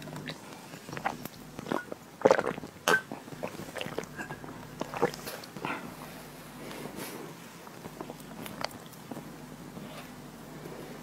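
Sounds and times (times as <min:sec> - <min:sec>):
person swallowing: 0:01.0 - 0:05.7.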